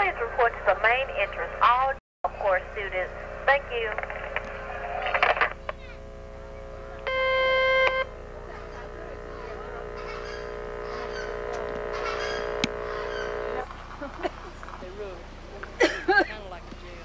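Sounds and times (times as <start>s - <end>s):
loud held tone: 0.0s - 13.8s
cluster of steady tones: 0.0s - 17.0s.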